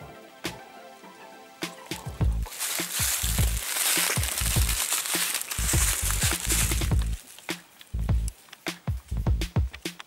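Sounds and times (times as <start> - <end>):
background music: 0.0 - 10.0
camera handling rustling in leaves: 2.5 - 7.5
low thuds: 5.6 - 7.2.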